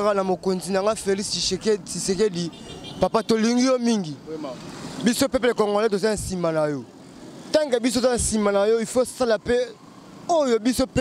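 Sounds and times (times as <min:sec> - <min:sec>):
man speaking into a microphone: 0:00.0 - 0:06.9, 0:07.5 - 0:11.0
faint street traffic: 0:00.0 - 0:11.0.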